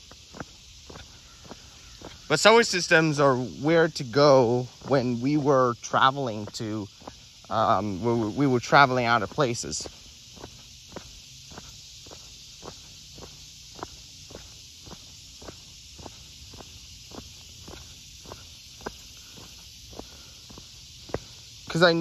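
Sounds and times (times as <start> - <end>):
footsteps on concrete: 0.0 - 22.0
steady high hiss: 0.0 - 22.0.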